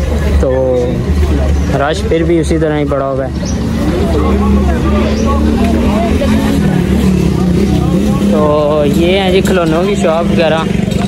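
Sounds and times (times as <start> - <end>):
motor traffic rumble: 0.0 - 11.0
people talking: 0.0 - 11.0.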